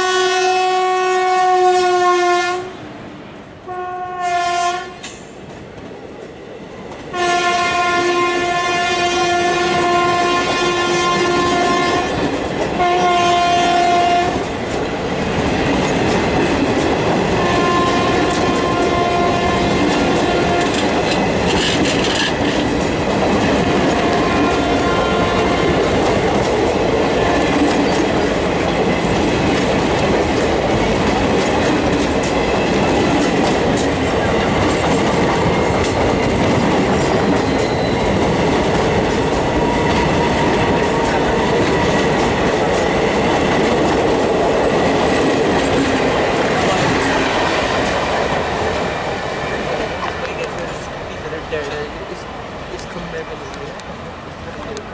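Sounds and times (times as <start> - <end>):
train horn blast: 0.0 - 2.8, 3.6 - 5.1, 7.1 - 12.2, 12.8 - 14.4, 17.3 - 21.0, 23.6 - 26.0
train wheels clattering over rail joints: 14.4 - 50.8.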